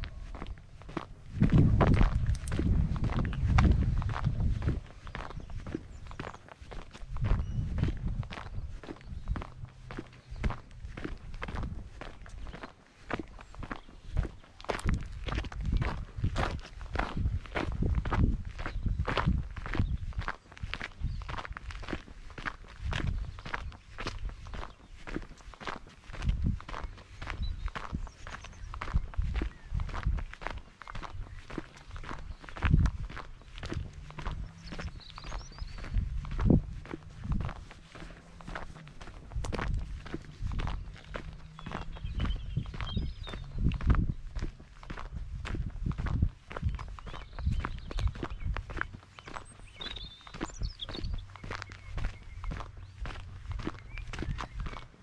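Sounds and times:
footsteps on sandy dirt: 0.0 - 55.0.

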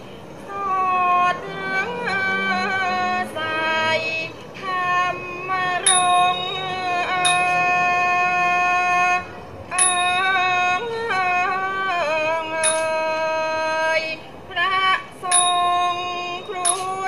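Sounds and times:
accompanying ensemble: 0.0 - 17.0
woman singing: 0.4 - 17.0
small hand cymbals ringing: 5.8 - 8.3, 9.7 - 10.4, 12.6 - 13.2, 15.3 - 17.0.

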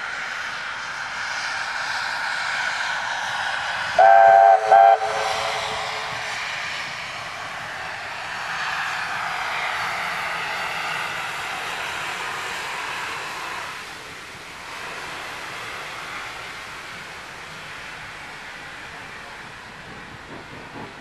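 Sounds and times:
steam train running past: 0.0 - 21.0
steam locomotive whistle blasts: 4.0 - 6.2.

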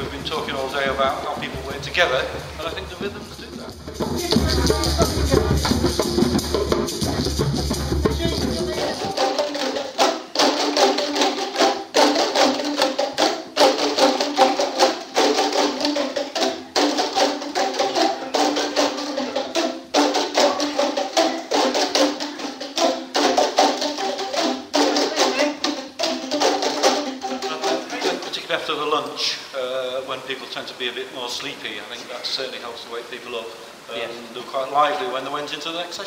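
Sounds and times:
boomwhackers rhythm: 0.0 - 29.2.

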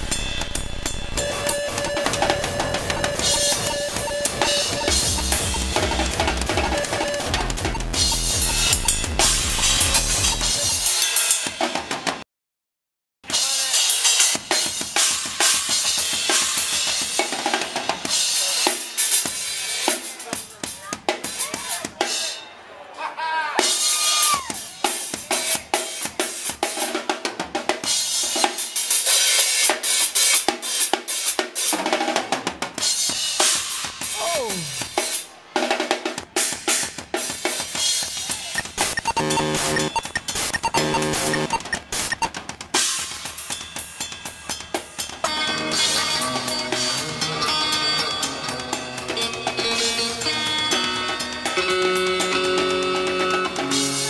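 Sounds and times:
live band with heavy bass: 0.0 - 11.9, 36.7 - 54.0
drum kit playing: 0.0 - 12.2, 36.4 - 47.2.

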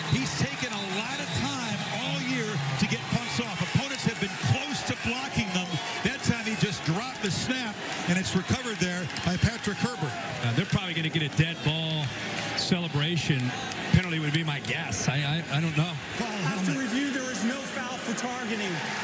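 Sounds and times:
men talking: 0.0 - 19.0
stadium crowd noise: 0.0 - 19.0.

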